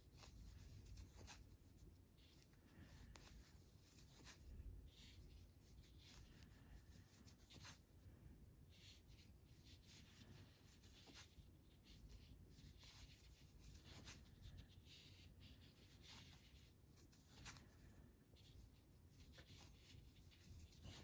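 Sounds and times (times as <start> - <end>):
yarn rubbing: 0.0 - 8.0, 8.7 - 21.0.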